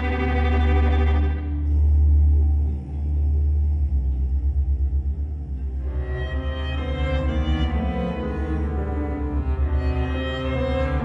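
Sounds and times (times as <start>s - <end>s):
dark film score music: 0.0s - 11.0s.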